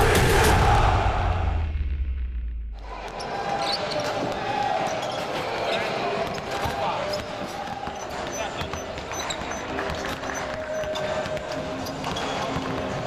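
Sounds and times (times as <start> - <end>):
basketballs bouncing in a hall: 2.9 - 13.0.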